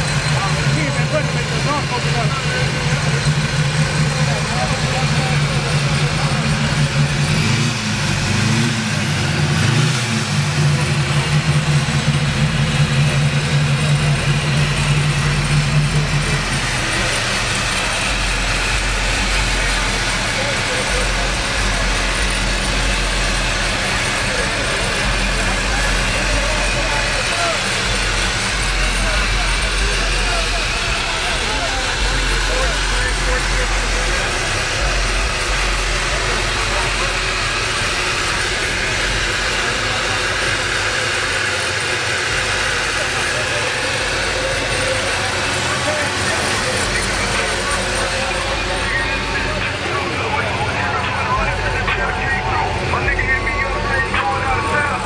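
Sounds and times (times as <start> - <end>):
car engine idling: 0.0 - 55.0.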